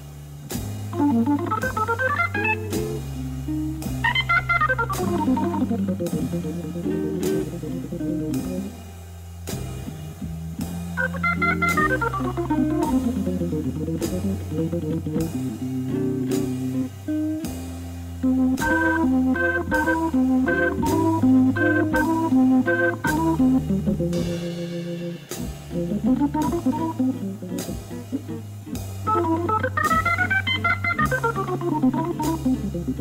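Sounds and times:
drums keeping time: 0:00.0 - 0:33.0
organ chords: 0:00.0 - 0:33.0
electric guitar runs: 0:11.0 - 0:15.7.

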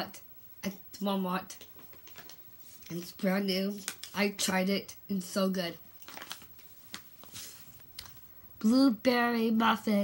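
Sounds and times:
coffee bag crinkling: 0:01.7 - 0:04.4, 0:06.0 - 0:08.2.

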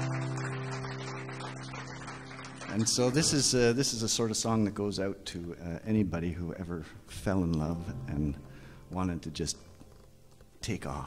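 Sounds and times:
acoustic guitar chord ringing: 0:07.8 - 0:09.2.

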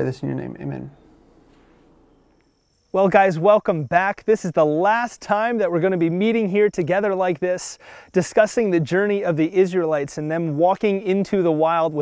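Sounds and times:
man speaking: 0:00.0 - 0:01.3
crickets chirping: 0:00.0 - 0:12.0
faint hiss: 0:00.0 - 0:12.0.

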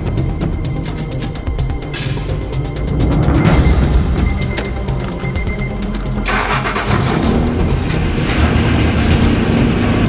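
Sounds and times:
background music with a beat: 0:00.0 - 0:10.0
car engine starting and running: 0:00.0 - 0:10.0.

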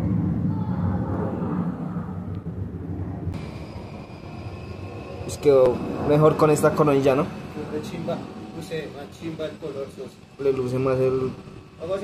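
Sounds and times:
faint high whine: 0:00.0 - 0:12.0
low background rumble: 0:00.0 - 0:12.0
steady hum: 0:00.0 - 0:12.0.

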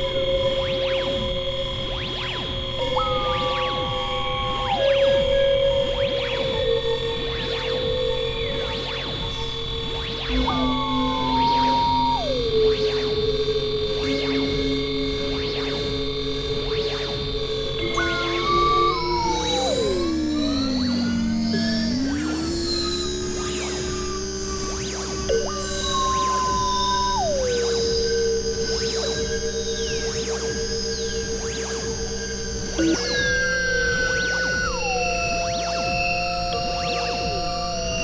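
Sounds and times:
synthesizer drone: 0:00.0 - 0:38.0
rising and falling pitch sweeps: 0:10.3 - 0:13.2, 0:17.8 - 0:31.6, 0:32.3 - 0:37.8
synth chord sliding down: 0:17.8 - 0:30.4.

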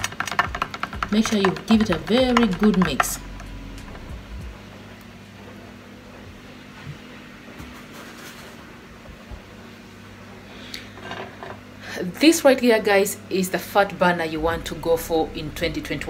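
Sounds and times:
low hum: 0:00.4 - 0:07.6, 0:14.1 - 0:16.0.

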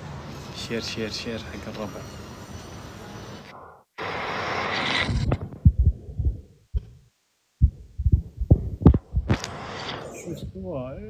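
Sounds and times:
rising hiss: 0:03.4 - 0:06.6, 0:07.6 - 0:11.0
low thumps on phone microphone: 0:05.2 - 0:07.0, 0:07.6 - 0:09.5.

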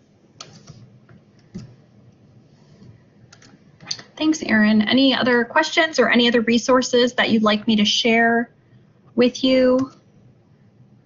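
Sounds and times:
computer keyboard keystrokes: 0:00.4 - 0:01.8, 0:03.3 - 0:04.1.

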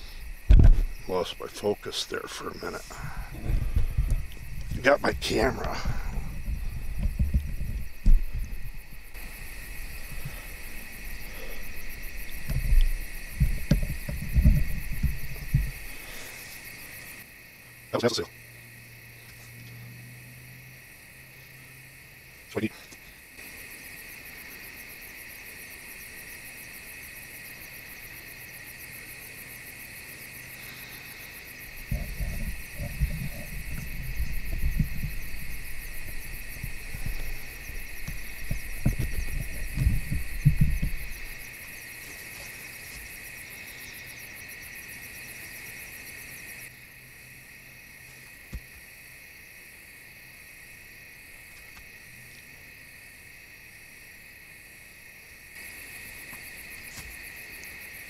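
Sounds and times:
night insects chirring: 0:00.0 - 0:58.0
camera handling rumble and knocks: 0:00.5 - 0:00.9, 0:06.4 - 0:08.8, 0:12.3 - 0:15.8, 0:31.9 - 0:41.4.

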